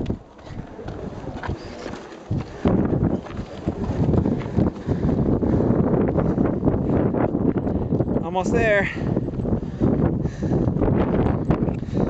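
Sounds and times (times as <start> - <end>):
footsteps on rock: 0.0 - 5.4
wind buffeting microphone: 0.0 - 12.0.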